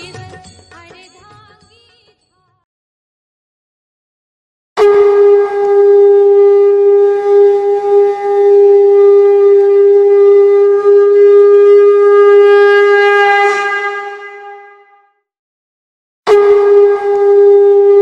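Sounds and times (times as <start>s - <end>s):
conch shell blown: 4.8s - 15.2s, 16.3s - 18.0s.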